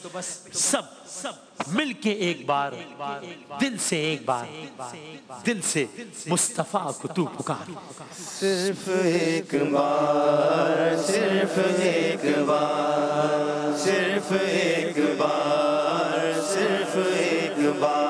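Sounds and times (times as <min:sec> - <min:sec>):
men chanting in held notes: 0:08.0 - 0:18.0.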